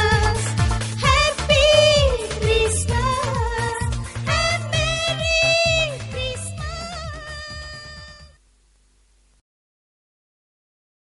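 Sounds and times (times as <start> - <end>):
backing music: 0.0 - 8.4.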